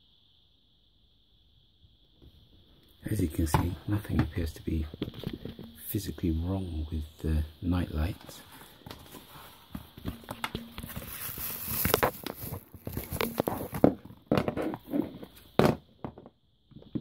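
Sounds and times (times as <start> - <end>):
packaging rustling: 10.0 - 15.4
knocks on wooden floor: 15.6 - 16.3.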